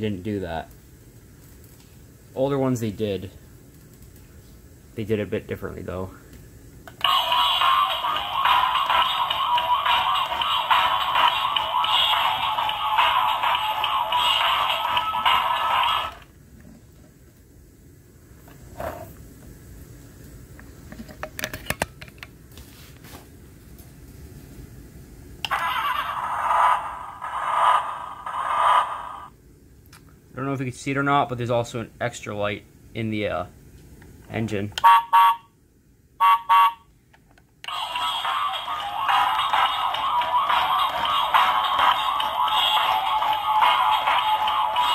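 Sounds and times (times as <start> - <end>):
toy speaker playing a song: 7.0 - 16.2, 37.7 - 44.9.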